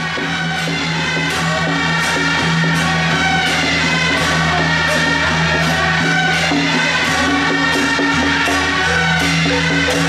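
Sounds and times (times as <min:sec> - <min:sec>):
cymbal crash: 0:00.0 - 0:10.0
procession music melody: 0:00.0 - 0:10.0.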